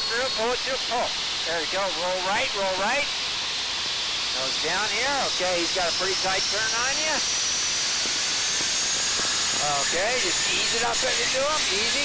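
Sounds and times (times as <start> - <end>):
high whine rising in pitch: 4.0 - 12.0.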